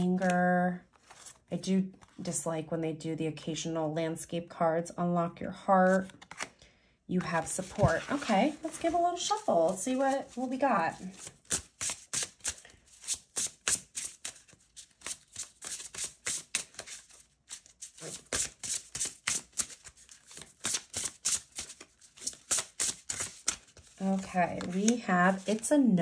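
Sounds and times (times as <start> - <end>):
cards being shuffled by hand: 5.9 - 6.5, 7.2 - 25.8.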